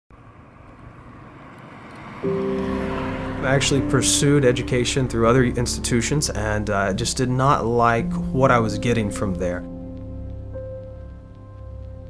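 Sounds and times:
faint low rumble: 0:02.3 - 0:12.0.

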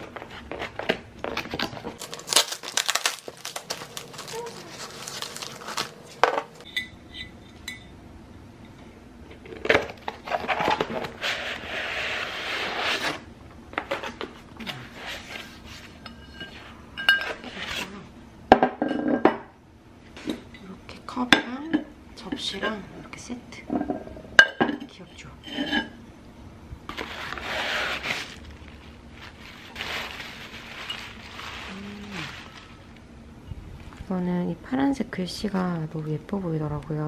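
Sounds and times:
cardboard rustling: 0:00.0 - 0:06.6, 0:26.9 - 0:32.8
box scraping out: 0:26.9 - 0:28.4.

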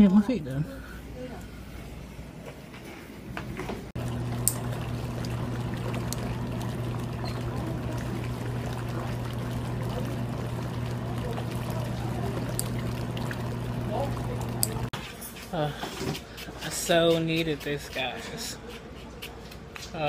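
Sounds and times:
low motor hum: 0:04.0 - 0:15.0
water pouring and churning: 0:04.0 - 0:15.0.

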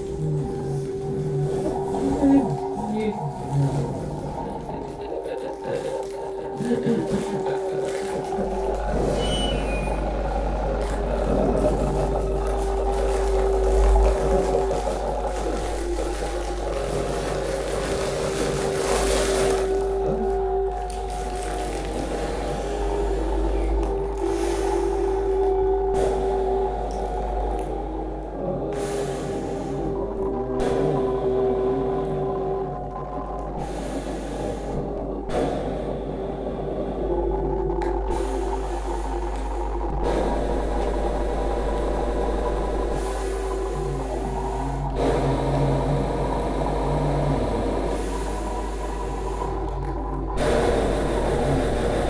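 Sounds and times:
deep electronic drone: 0:00.0 - 0:52.0
dense processed texture: 0:00.0 - 0:52.0.

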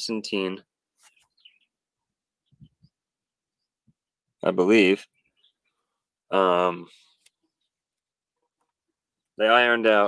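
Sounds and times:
faint bird chirps: 0:01.0 - 0:09.4.

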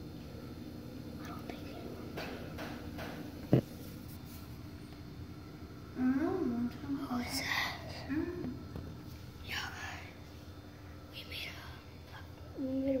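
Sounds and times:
steady low hum: 0:00.0 - 0:13.0
hushed whispering: 0:01.2 - 0:02.1.

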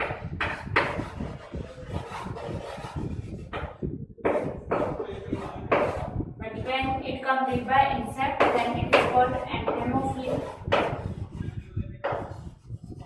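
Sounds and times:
chalk writing on a chalkboard: 0:00.0 - 0:06.2, 0:08.3 - 0:13.0.

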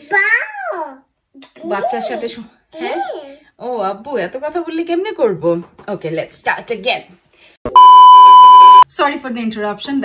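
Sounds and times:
electronic beep tone: 0:07.7 - 0:08.8.

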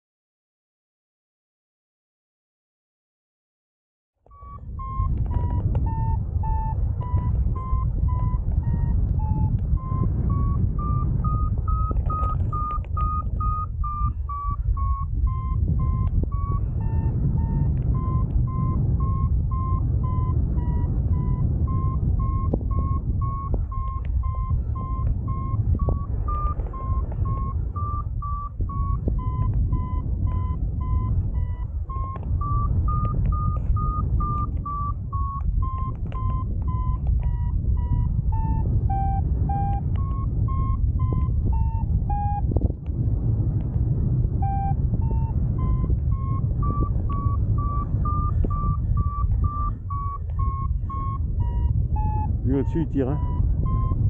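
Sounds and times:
variometer beeping: 0:04.3 - 0:54.0
wind rushing over microphone: 0:04.3 - 0:54.0.

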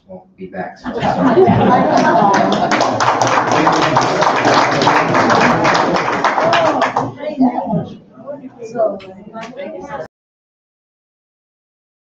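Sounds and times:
people talking: 0:00.0 - 0:10.1
laughter: 0:00.8 - 0:04.0
audience applauding: 0:01.3 - 0:07.2.

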